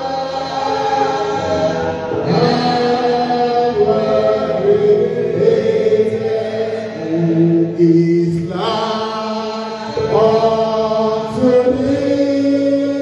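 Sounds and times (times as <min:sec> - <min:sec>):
man singing slow church song: 0:00.0 - 0:13.0.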